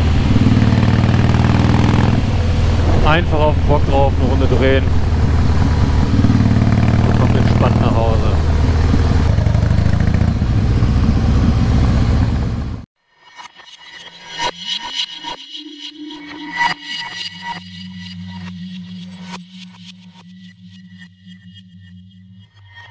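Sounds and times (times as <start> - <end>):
wind noise: 0.0 - 7.0, 8.3 - 12.6
motorcycle engine running: 0.0 - 12.9
gliding electronic tone: 1.6 - 12.1.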